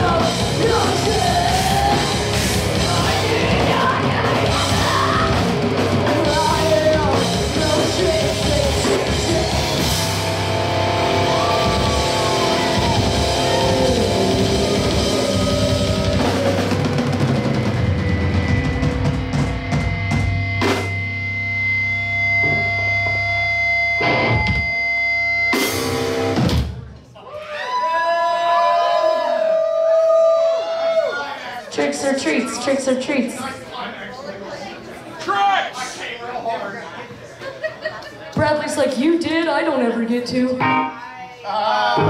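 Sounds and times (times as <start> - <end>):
live rock band playing: 0.0 - 26.8, 40.2 - 41.1.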